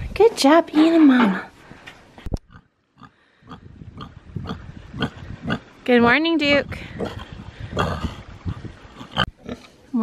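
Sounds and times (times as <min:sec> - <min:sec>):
pig grunting: 0:06.9 - 0:09.8.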